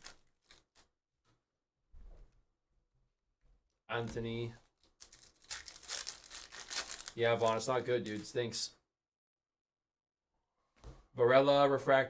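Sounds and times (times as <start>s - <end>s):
plastic wrapper crinkling: 0.0s - 0.9s, 4.6s - 8.4s.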